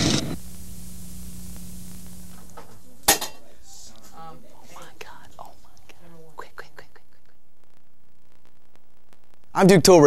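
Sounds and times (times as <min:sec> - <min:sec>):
low hum: 0:00.0 - 0:02.6
recording hiss: 0:00.0 - 0:10.0.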